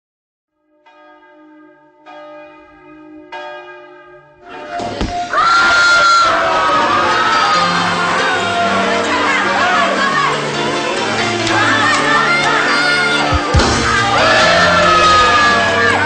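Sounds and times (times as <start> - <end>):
music: 4.2 - 16.0
crowd shouting: 4.4 - 16.0.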